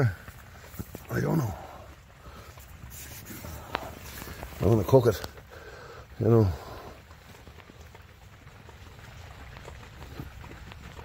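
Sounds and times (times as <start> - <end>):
potting soil crumbling and rustling: 0.0 - 11.0.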